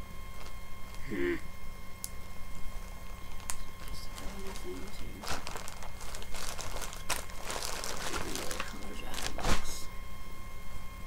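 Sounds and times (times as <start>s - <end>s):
crinkling and rustling materials: 0.3s - 1.0s, 2.6s - 9.9s.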